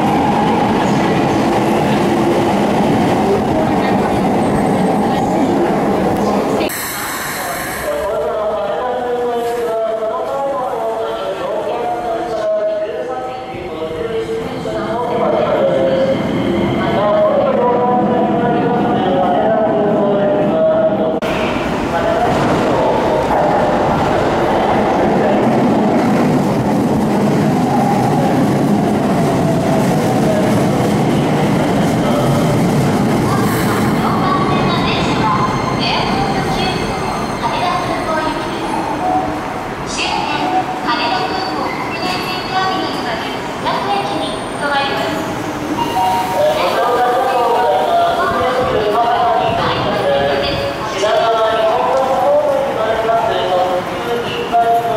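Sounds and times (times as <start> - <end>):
voices: 0.0 - 26.6, 27.4 - 54.9
rail and brake noise: 3.0 - 11.2, 20.6 - 54.9.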